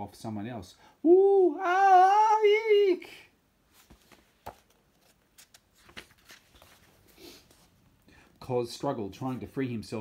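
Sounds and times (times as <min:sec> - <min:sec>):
book page turning: 0:03.7 - 0:07.8.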